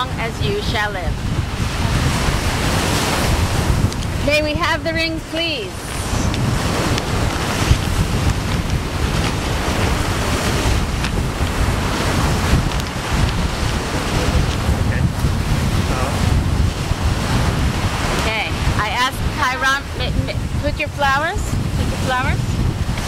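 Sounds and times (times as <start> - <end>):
ocean surf breaking: 0.0 - 23.0
wind buffeting microphone: 0.0 - 23.0.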